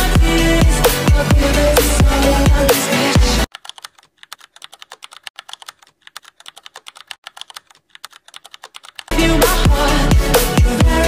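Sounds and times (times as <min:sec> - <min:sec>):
music: 0:00.0 - 0:03.5, 0:09.1 - 0:11.0
keyboard typing: 0:03.5 - 0:09.1.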